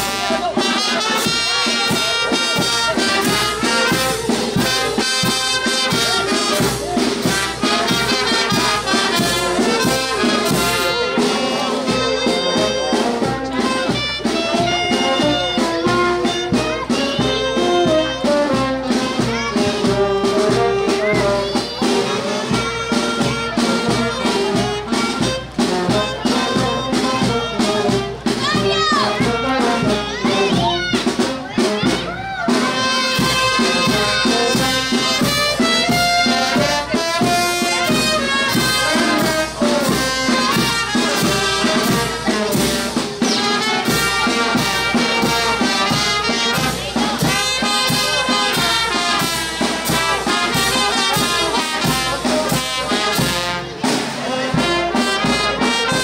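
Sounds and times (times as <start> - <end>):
steady drum beat: 0.0 - 56.0
trumpets and trombones playing: 0.0 - 56.0.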